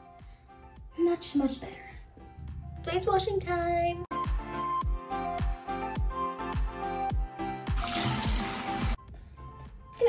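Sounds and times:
background music with steady beat: 0:00.0 - 0:10.0
water running from sink tap: 0:07.7 - 0:09.0.

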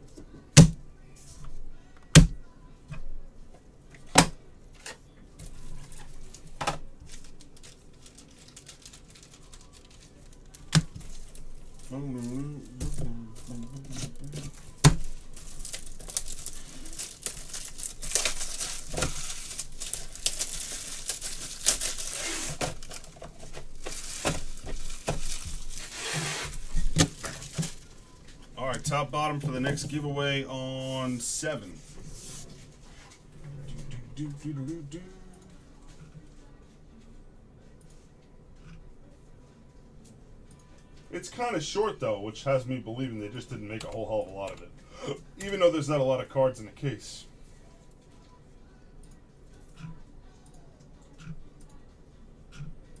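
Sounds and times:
plastic wrapping tearing and crinkling: 0:05.4 - 0:28.2.

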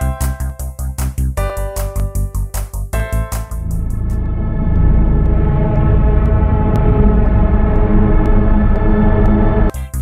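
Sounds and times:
low rumble: 0:03.1 - 0:09.7
ominous synthesizer drone: 0:03.2 - 0:09.8.

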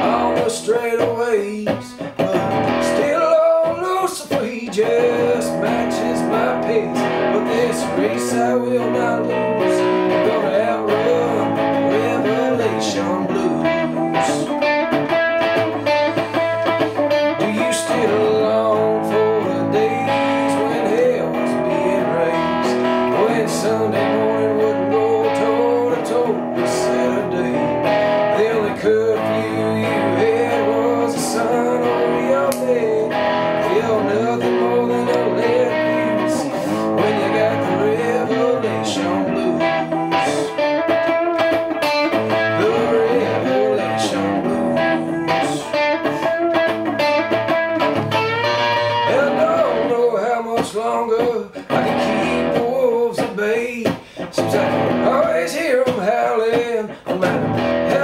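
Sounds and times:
bluesy electric guitar: 0:00.0 - 0:58.0.

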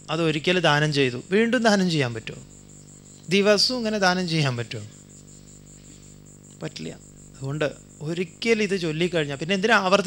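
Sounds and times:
faint high-pitched whine: 0:00.0 - 0:10.0
man speaking into a microphone: 0:00.1 - 0:02.5, 0:03.3 - 0:04.9, 0:06.6 - 0:10.0.

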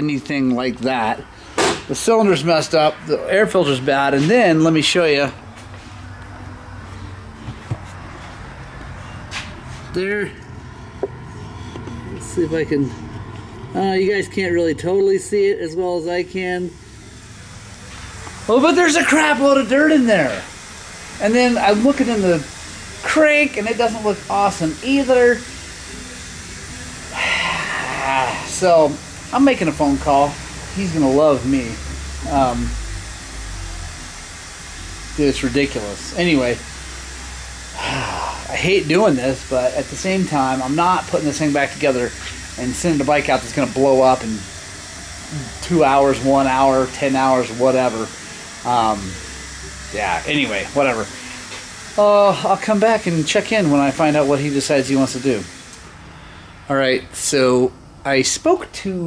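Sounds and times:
workshop low hum: 0:00.0 - 0:59.0
background hiss: 0:16.7 - 0:59.0.

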